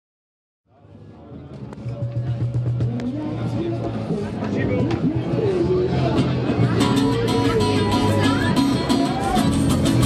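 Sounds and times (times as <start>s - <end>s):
people talking: 0.7s - 10.0s.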